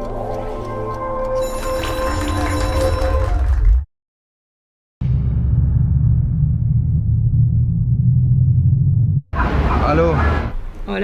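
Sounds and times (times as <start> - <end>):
voice: 9.4 - 11.0.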